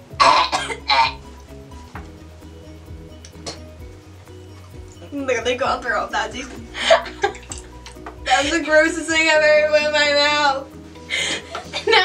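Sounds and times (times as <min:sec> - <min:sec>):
background music: 0:00.0 - 0:12.0
woman coughing and gagging: 0:00.1 - 0:01.2.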